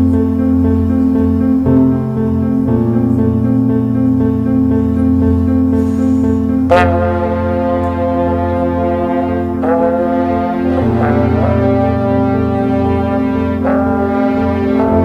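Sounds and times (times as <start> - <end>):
low sustained tone: 0.0 - 15.0
french horns playing held notes: 5.8 - 15.0.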